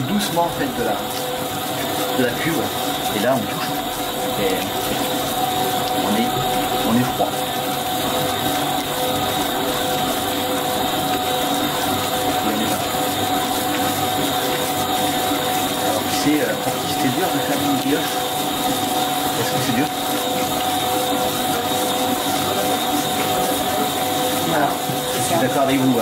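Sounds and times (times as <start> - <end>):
stand mixer motor whine: 0.0 - 26.0.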